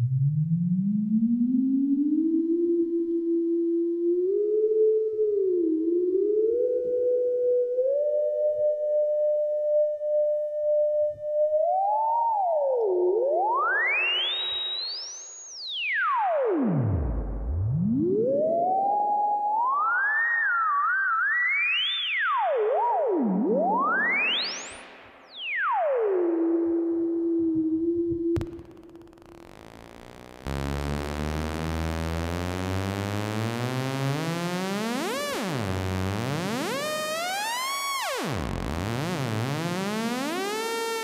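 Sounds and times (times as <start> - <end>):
synth tone sweeping in pitch: 13.3 - 15.4, 21.5 - 27.4, 28.4 - 40.6.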